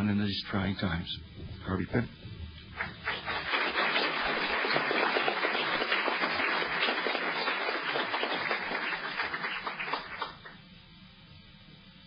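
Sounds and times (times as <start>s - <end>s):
audience applauding: 2.7s - 10.6s.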